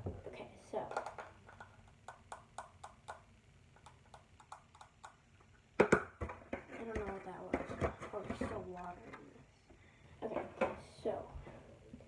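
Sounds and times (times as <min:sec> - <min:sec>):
fingers tapping small container: 0:01.0 - 0:05.2.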